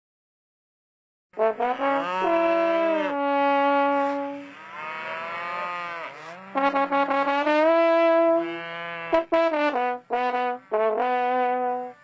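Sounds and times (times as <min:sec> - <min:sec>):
cow mooing: 0:01.4 - 0:09.5
trombone notes: 0:01.4 - 0:12.0.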